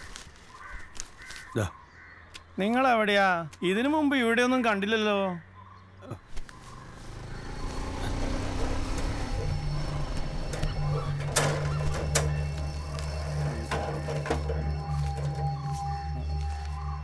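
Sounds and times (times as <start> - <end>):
low background score drone: 6.7 - 17.0.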